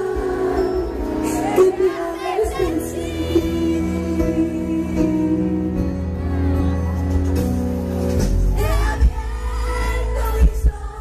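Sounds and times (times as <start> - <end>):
band with acoustic guitar: 0.0 - 11.0.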